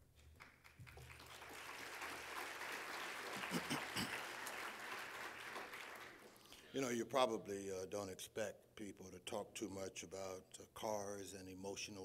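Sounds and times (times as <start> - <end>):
audience applauding: 0.4 - 6.4.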